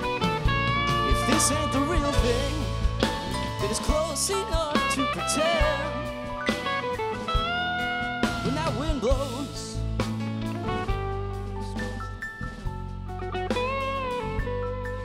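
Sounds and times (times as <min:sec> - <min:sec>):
drum kit: 0:00.0 - 0:15.0
electric bass: 0:00.0 - 0:15.0
electric lead guitar: 0:00.0 - 0:15.0.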